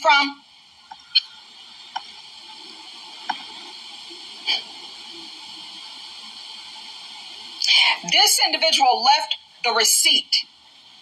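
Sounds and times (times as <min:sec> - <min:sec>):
steady faint hiss: 0:00.0 - 0:11.0.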